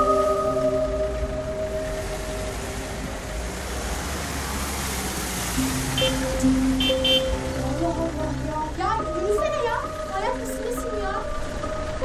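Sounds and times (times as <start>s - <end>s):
soft mallet percussion music: 0.0s - 3.6s, 5.6s - 12.0s
car rolling slowly: 0.0s - 12.0s.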